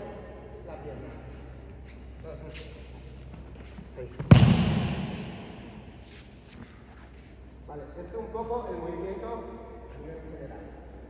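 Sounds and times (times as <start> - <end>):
body slapping thud on mat: 4.3 - 5.5.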